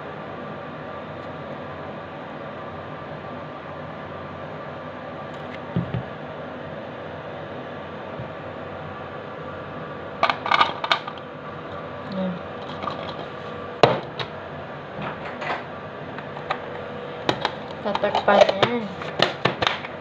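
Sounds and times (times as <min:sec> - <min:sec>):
steady background hum: 0:00.0 - 0:20.0.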